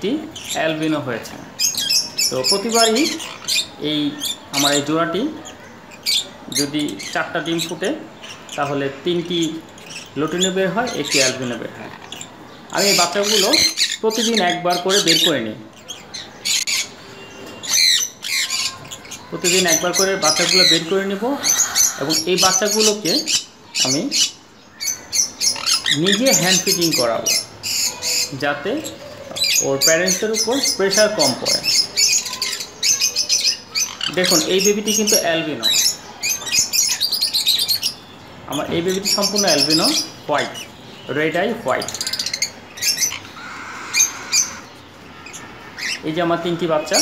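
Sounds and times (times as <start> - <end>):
small birds chirping: 0.0 - 47.0
cockatiel chicks hissy calls: 17.7 - 23.4, 42.0 - 46.0.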